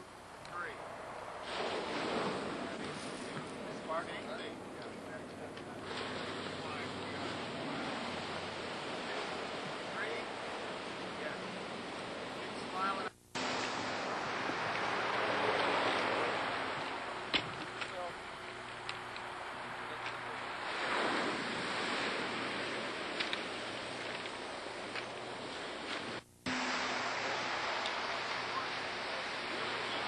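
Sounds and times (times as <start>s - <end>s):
ocean surf: 0.0s - 30.0s
wind: 0.0s - 30.0s.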